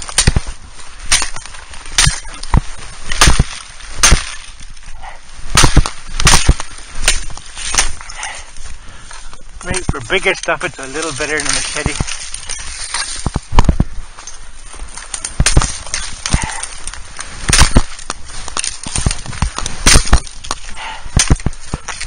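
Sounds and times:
axe chopping stems: 0.0 - 4.7, 5.5 - 8.3, 15.1 - 22.0.

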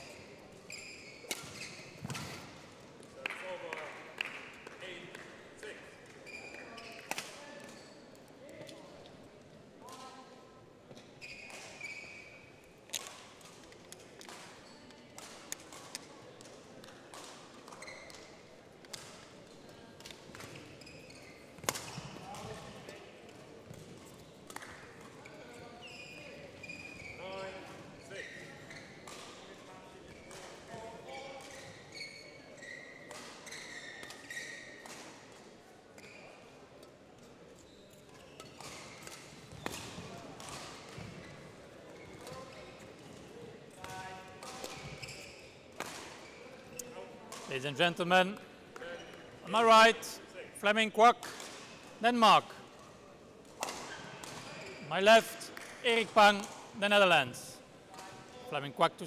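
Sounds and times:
shoe squeaks on court floor: 0.0 - 2.6, 6.2 - 7.1, 10.9 - 12.6, 17.7 - 18.5, 20.4 - 22.7, 25.2 - 29.4, 30.0 - 30.4, 31.2 - 34.9, 36.0 - 36.5, 37.6 - 42.8, 43.9 - 47.6, 53.6 - 55.0
rackets hitting shuttlecock: 1.2 - 2.5, 21.6 - 22.6, 29.0 - 29.4, 38.4 - 41.3, 45.7 - 46.2, 51.2 - 52.0, 53.4 - 54.6.

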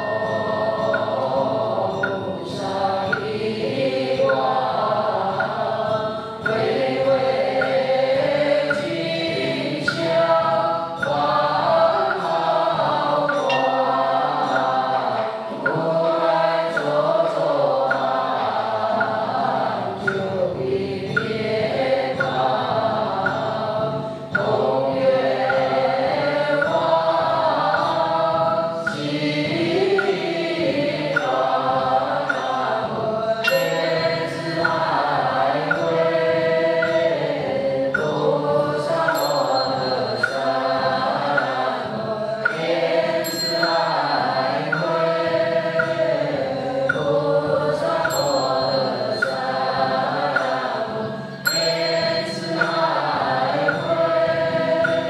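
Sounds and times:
voices chanting: 0.0 - 55.0
high ringing tone: 39.2 - 40.6, 43.2 - 44.2, 48.1 - 49.4, 51.4 - 52.9.

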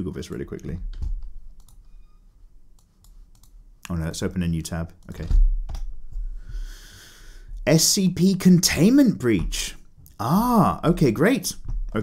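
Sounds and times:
computer keyboard clicks: 0.3 - 1.8, 2.8 - 3.6.

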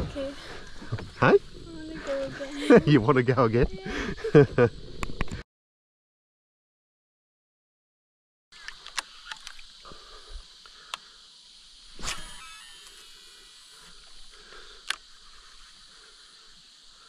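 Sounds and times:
high insect hum: 0.0 - 5.4, 8.5 - 17.0.

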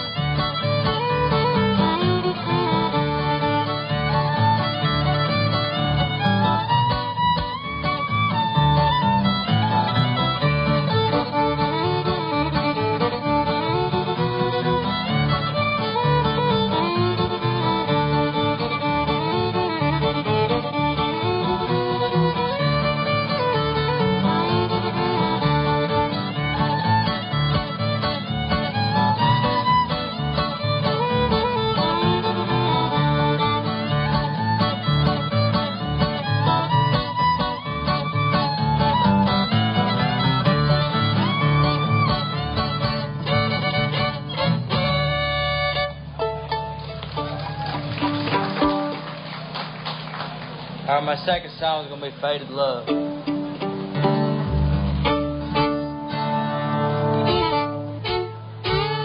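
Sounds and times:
fiddle playing bluegrass tune: 0.0 - 59.0
guitar rhythm: 0.0 - 59.0.

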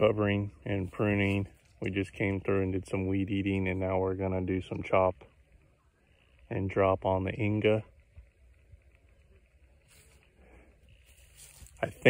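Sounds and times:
man speaking: 0.0 - 5.3, 6.5 - 7.9, 11.6 - 12.0
soft hiss: 4.8 - 12.0.

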